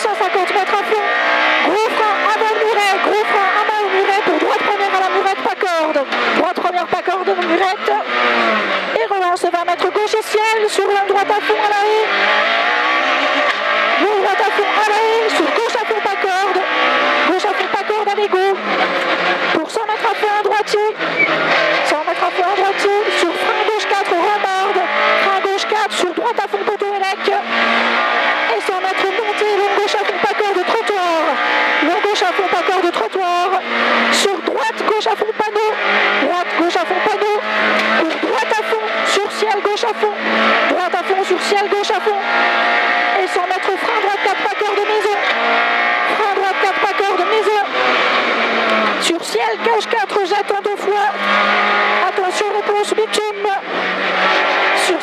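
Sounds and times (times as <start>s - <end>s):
rally car engine revving: 0.0s - 55.0s.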